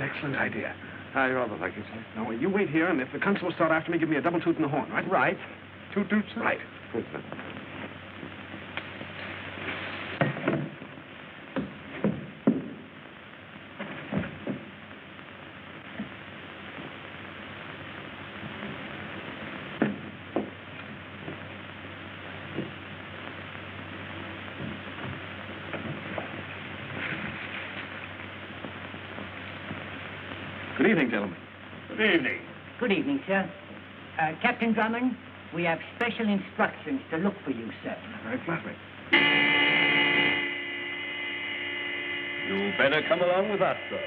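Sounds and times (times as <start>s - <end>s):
film soundtrack hiss and hum: 0.0s - 44.0s.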